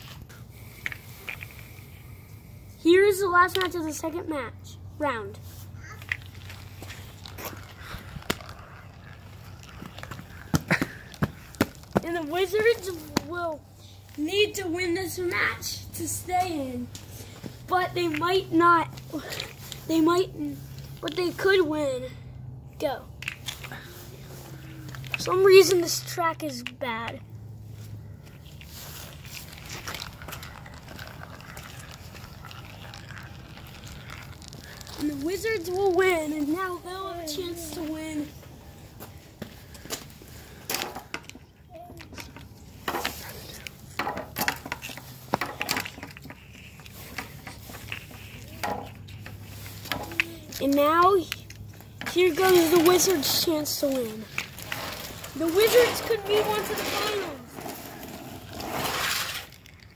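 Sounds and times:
marble rolling on plastic track: 29.6 - 35.1, 54.4 - 59.9.

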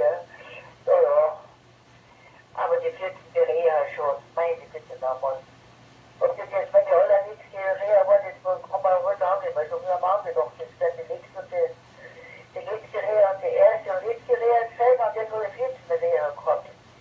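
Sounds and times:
speech over radio speaker: 0.0 - 1.5, 2.6 - 5.4, 6.2 - 16.8
faint steady hum: 0.0 - 17.0.

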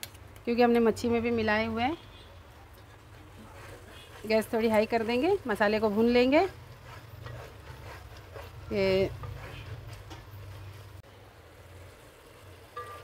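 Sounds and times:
masala frying: 0.0 - 13.0
wooden spoon scraping a pot: 2.7 - 11.0.

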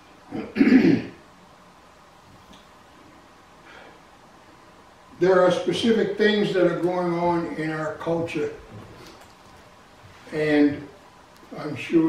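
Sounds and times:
man clearing his throat: 0.3 - 1.2.

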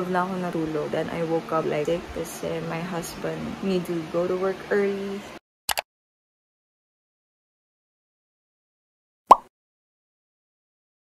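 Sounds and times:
short pop sound effect: 9.3 - 9.5.

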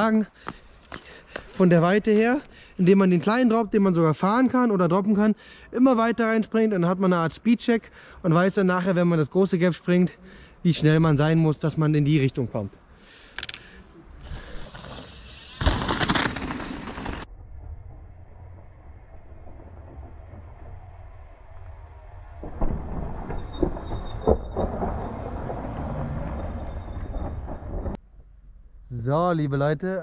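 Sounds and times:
bike tyres rumbling on gravel: 14.2 - 17.3
bike landing knocks: 14.7 - 17.2.

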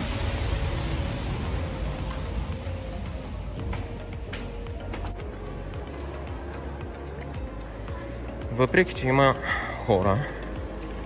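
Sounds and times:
rushing noise with low rumble: 0.0 - 8.6.

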